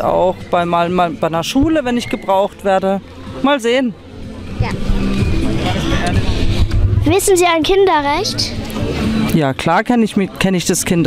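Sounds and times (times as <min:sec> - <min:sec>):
low fluctuating rumble: 0:04.6 - 0:09.1.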